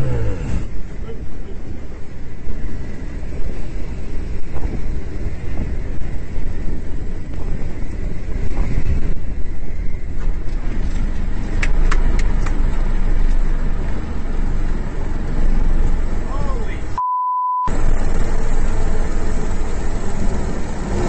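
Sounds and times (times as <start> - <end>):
wind on microphone: 0.0 - 12.9
propeller engine rumble: 0.0 - 17.0, 17.7 - 21.0
censor bleep: 17.0 - 17.7.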